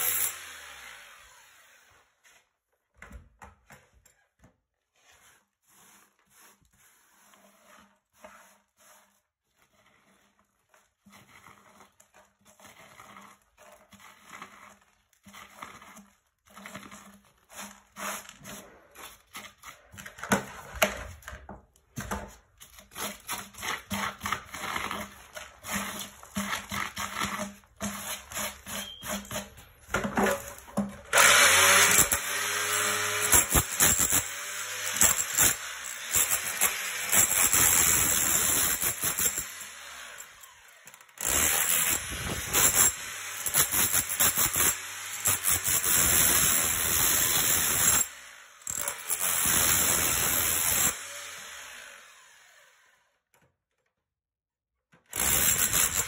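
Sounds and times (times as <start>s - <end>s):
power drill boring into concrete: 0.0s - 2.0s, 28.0s - 29.5s, 31.1s - 53.2s, 55.1s - 56.0s
broken concrete knocks and scrapes: 9.6s - 39.5s, 41.4s - 48.0s.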